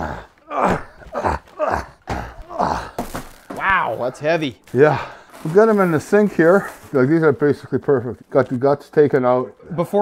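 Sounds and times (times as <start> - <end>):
man grunting with effort: 0.0 - 3.1.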